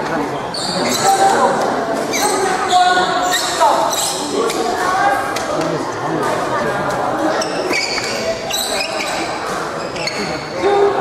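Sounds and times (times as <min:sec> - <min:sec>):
background chatter: 0:00.0 - 0:11.0
shoe squeaks on court: 0:00.5 - 0:01.4, 0:02.0 - 0:04.6, 0:07.3 - 0:10.5.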